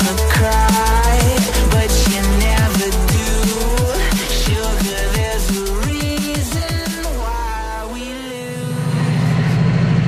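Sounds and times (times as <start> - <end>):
music: 0.0 - 10.0
diesel locomotive engine throbbing: 8.5 - 10.0.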